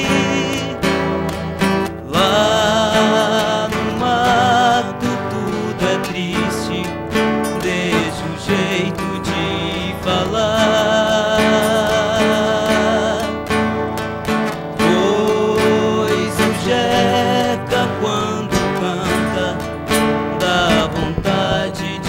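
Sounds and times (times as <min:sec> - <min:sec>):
strummed acoustic guitars: 0:00.0 - 0:22.0
two men singing: 0:00.0 - 0:22.0.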